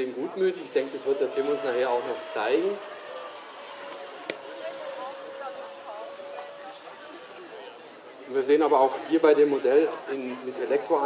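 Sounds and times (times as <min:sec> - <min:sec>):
electric ducted fan whine: 0:00.0 - 0:09.4
faint voices: 0:00.0 - 0:11.0.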